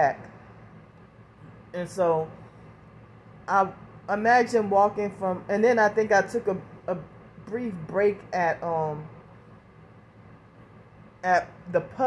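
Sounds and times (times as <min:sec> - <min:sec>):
faint hum and hiss: 0:00.0 - 0:12.0.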